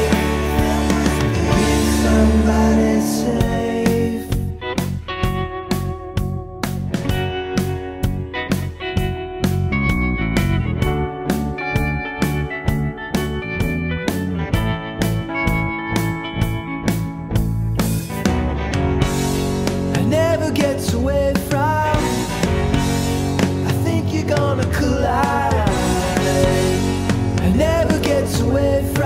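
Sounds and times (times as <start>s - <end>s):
electric guitar lines: 0.0s - 29.0s
rock band playing: 0.0s - 29.0s.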